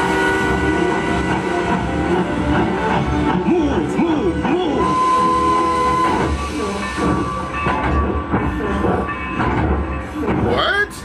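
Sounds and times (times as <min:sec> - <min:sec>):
steam locomotive whistle: 0:00.0 - 0:02.5, 0:04.7 - 0:07.6
locomotive rumbling on rails: 0:00.0 - 0:11.0.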